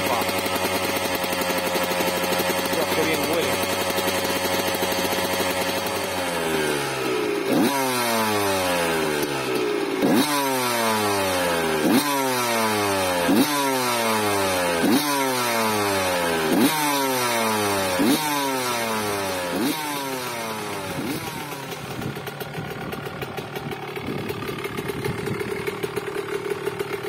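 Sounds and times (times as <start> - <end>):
two-stroke engine revving: 0.0 - 27.0.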